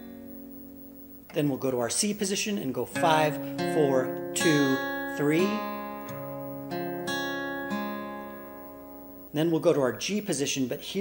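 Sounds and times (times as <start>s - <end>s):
acoustic guitar arpeggio: 2.7s - 9.4s.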